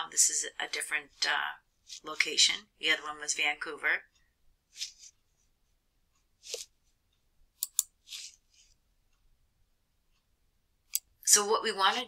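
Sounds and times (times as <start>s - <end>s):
soft breaths: 4.1s - 7.0s, 8.0s - 9.2s
sharp clicks: 7.6s - 7.9s.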